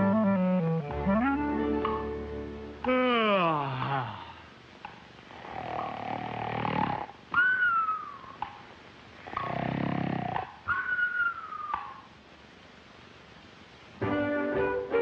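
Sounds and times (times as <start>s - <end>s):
cartoon snoring: 5.3s - 7.2s, 9.2s - 10.5s.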